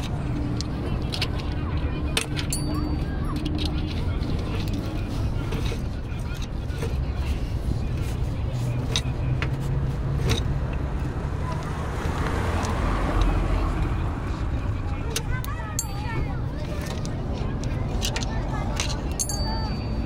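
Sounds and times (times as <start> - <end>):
engine low rumble: 0.0 - 20.0.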